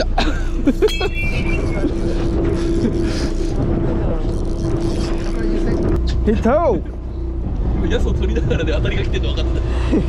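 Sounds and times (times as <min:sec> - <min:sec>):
boat engine running: 0:00.0 - 0:10.0
short high tone: 0:00.9 - 0:01.9.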